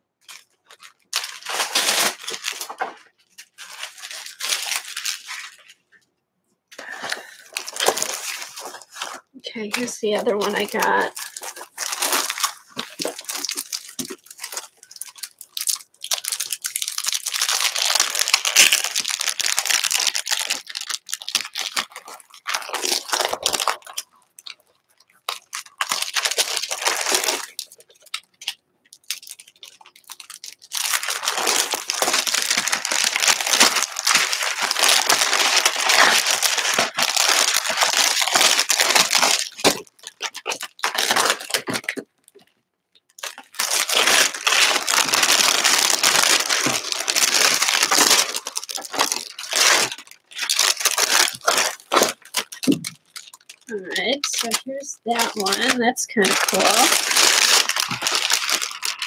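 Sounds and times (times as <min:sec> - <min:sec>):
plastic packaging crinkling and tearing: 0:00.2 - 0:06.0, 0:06.7 - 0:59.0.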